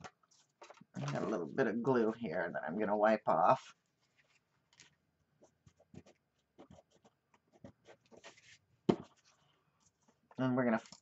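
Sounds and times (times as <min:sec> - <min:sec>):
tissue rustling against cardstock: 0:03.4 - 0:11.0.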